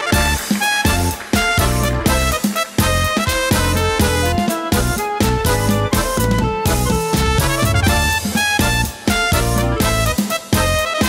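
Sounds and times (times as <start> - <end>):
accordion melody: 0.0 - 11.0
drum kit beat: 0.0 - 11.0
live band playing chanson: 0.0 - 11.0.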